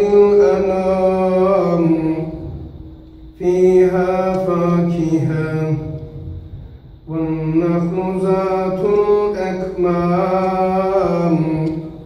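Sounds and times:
man chanting recitation: 0.0 - 6.4, 7.0 - 12.0.

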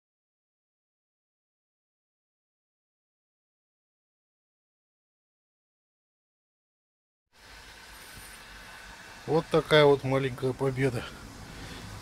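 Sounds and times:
low outdoor rumble with hiss: 7.3 - 12.0.

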